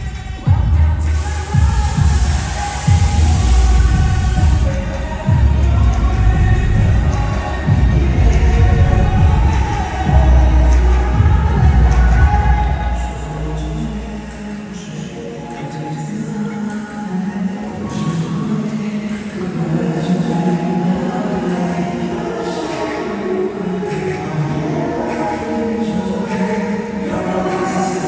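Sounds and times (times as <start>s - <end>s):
pop dance track over sound system: 0.0s - 28.0s
loud rushing noise: 1.1s - 5.0s.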